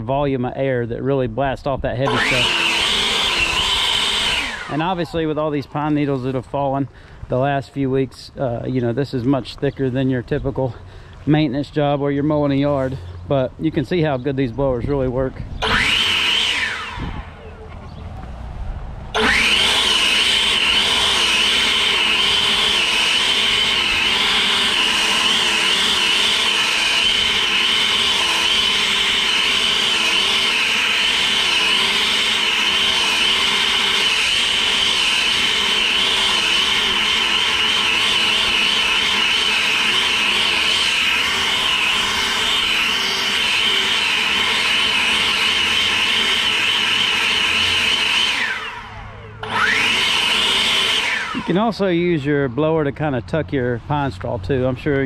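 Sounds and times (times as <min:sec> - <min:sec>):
leaf blower whining: 0:02.0 - 0:07.3, 0:14.9 - 0:52.6.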